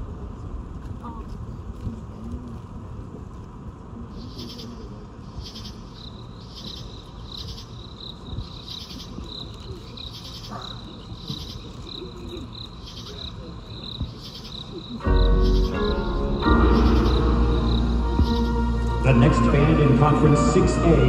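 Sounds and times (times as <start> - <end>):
crowd murmur: 8.2 - 21.0
insect chirping trill: 12.5 - 19.0.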